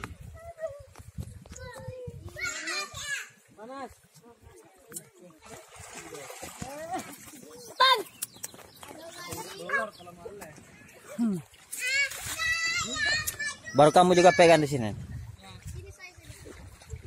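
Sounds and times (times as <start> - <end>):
people calling and chattering: 0.0 - 17.0
water splashing: 1.8 - 17.0.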